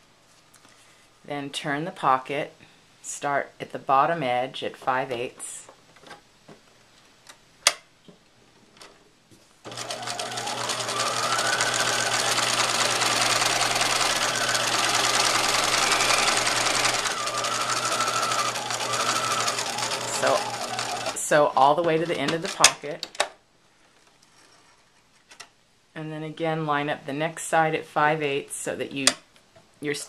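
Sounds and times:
sewing machine stitching: 9.7s - 22.8s.

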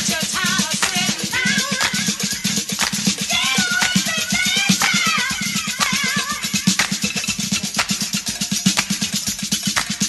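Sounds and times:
funk disco dance music: 0.0s - 10.0s.

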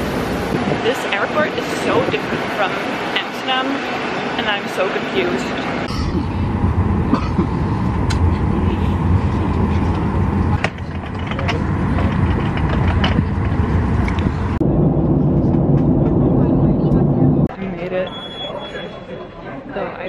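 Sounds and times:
airliner cabin engine drone: 0.0s - 18.8s.

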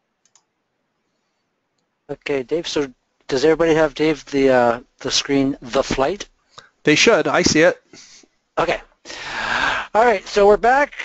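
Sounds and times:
faint short clicks: 0.2s - 0.5s.

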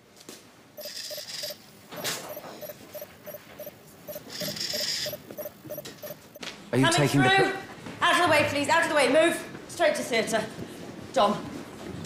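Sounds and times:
toy robot beeping: 0.8s - 6.4s
short robot whirs: 4.2s - 6.1s.

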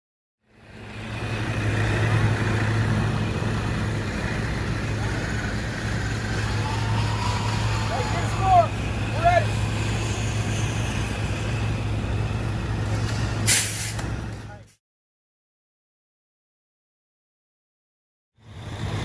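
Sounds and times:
truck engine humming: 0.4s - 14.7s, 18.4s - 19.0s.

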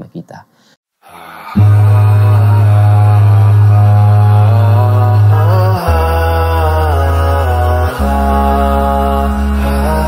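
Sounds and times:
slow chanted vocal melody: 1.0s - 10.0s
deep steady drone: 1.6s - 10.0s.

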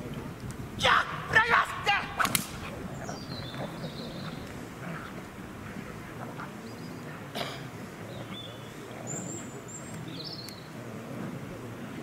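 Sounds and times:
low outdoor background: 0.0s - 12.0s
person shouting commands: 0.8s - 2.4s
sharp cracks: 2.0s - 2.7s.

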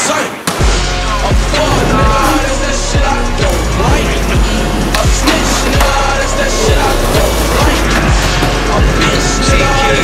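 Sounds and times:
hip-hop track: 0.0s - 10.0s.

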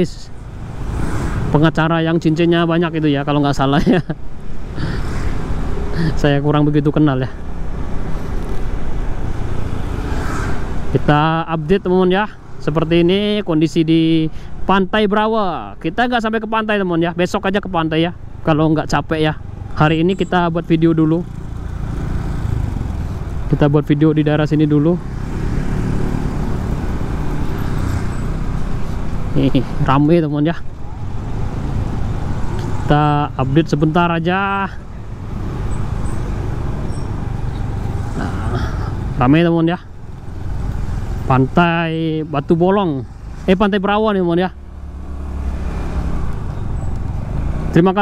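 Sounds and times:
road and traffic noise: 0.0s - 48.0s.

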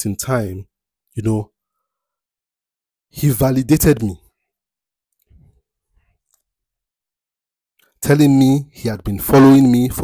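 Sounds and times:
man speaking: 0.0s - 1.5s, 3.2s - 4.3s, 8.0s - 10.0s.

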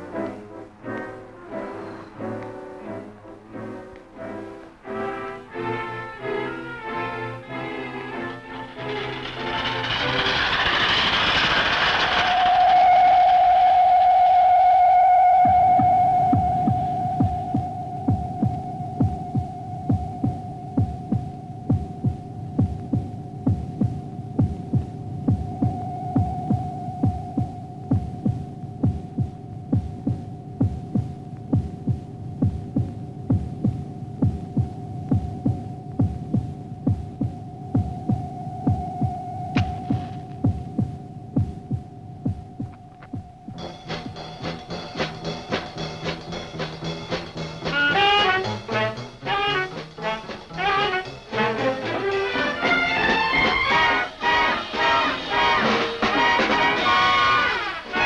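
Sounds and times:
low throbbing pulse: 8.3s - 51.8s
sustained high electronic tone: 33.1s - 44.5s.

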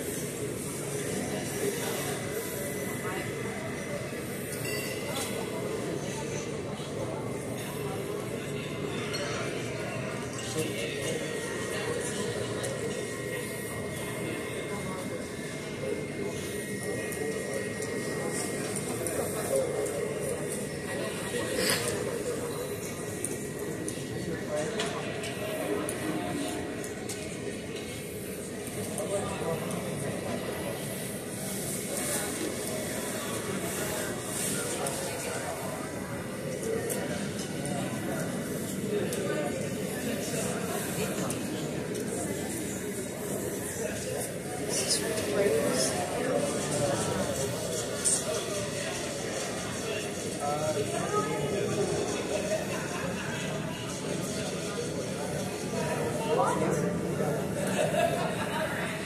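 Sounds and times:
faint voices: 0.0s - 59.0s
steady background hum: 0.0s - 59.0s.

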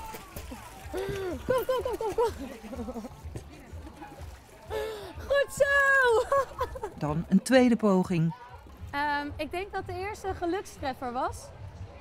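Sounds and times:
water sloshing and splashing: 0.0s - 7.4s.

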